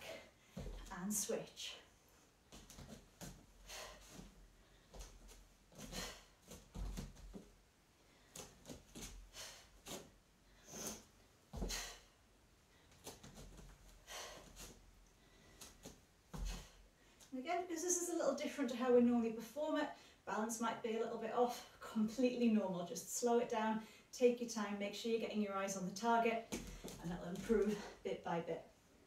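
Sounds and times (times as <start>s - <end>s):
bare feet thudding on foam mat: 2.5s - 7.6s, 15.6s - 16.8s, 26.5s - 27.9s.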